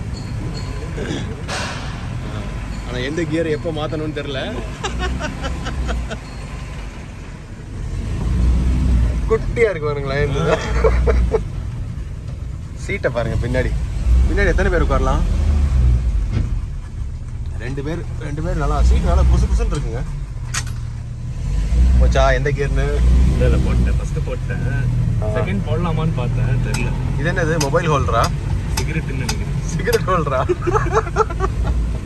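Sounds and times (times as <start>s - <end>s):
car engine rumbling: 0.0s - 32.0s.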